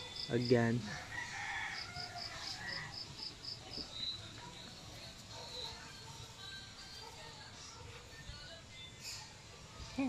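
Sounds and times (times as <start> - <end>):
high insect chirping: 0.0 - 4.3
rooster crowing: 0.9 - 3.0.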